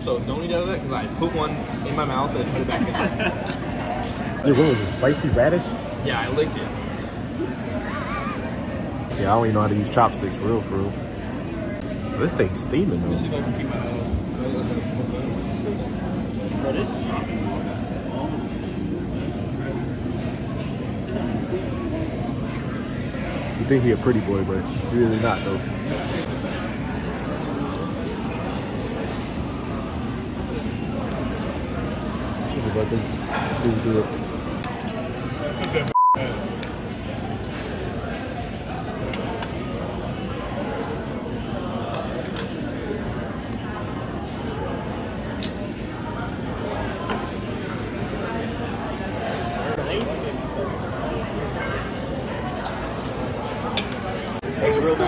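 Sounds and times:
restaurant chatter: 0:00.0 - 0:55.0
meat sizzling on grill: 0:26.2 - 0:35.8.

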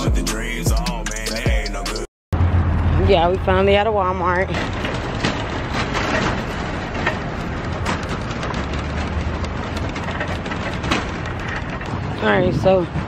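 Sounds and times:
cart clacking: 0:02.4 - 0:13.0
cart wheels rolling on asphalt: 0:02.4 - 0:13.0.

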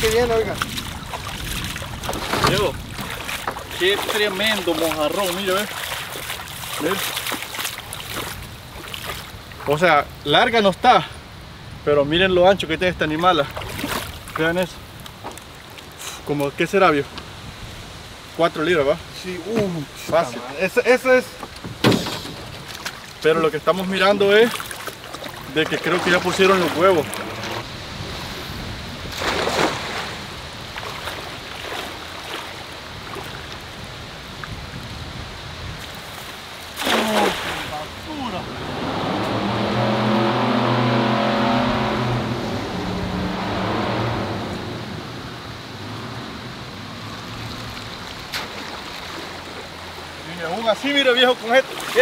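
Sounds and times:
cast net hitting water: 0:00.0 - 0:09.8, 0:13.4 - 0:14.6, 0:21.3 - 0:27.6, 0:29.1 - 0:33.5, 0:36.6 - 0:38.2, 0:48.2 - 0:49.8
splashing in shallow water: 0:00.0 - 0:10.4, 0:13.0 - 0:18.4, 0:19.2 - 0:44.8, 0:45.9 - 0:52.0
engine hum: 0:21.3 - 0:33.6, 0:36.5 - 0:50.3.

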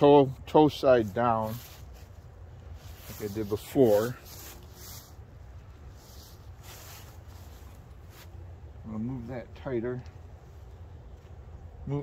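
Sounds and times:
rope rustling and rubbing: 0:00.8 - 0:08.6.

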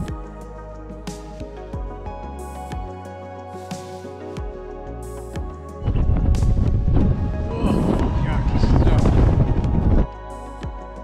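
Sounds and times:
wind buffeting microphone: 0:05.8 - 0:10.1.

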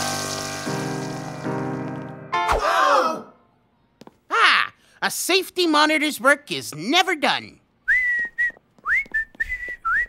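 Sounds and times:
person whistling a tune: 0:07.9 - 0:10.0.

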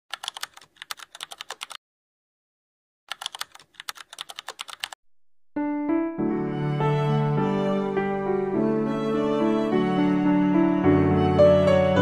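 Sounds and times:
computer keyboard typing: 0:00.1 - 0:01.8, 0:03.1 - 0:05.0
soft piano music: 0:05.6 - 0:12.0.

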